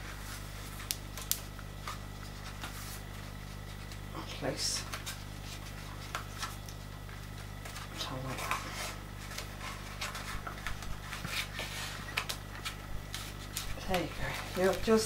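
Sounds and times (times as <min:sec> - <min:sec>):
card and paper rustling: 0:00.0 - 0:15.0
low electrical hum: 0:00.0 - 0:15.0.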